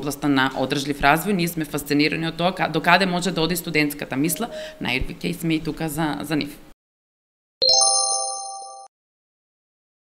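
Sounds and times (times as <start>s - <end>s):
bright bell-like chime: 7.6s - 8.9s.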